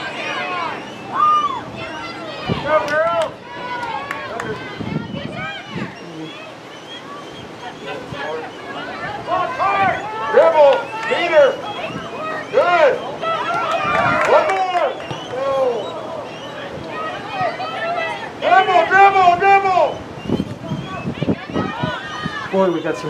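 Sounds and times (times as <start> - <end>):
parents shouting: 0.0 - 20.0, 20.9 - 23.0.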